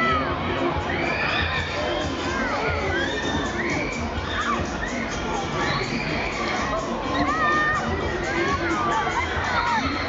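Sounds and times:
loud ride music: 0.0s - 10.0s
riders screaming and shouting: 0.0s - 10.0s.

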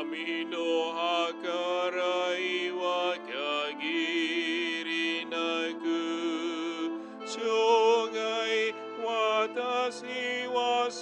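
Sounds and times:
person chanting a psalm: 0.0s - 11.0s.

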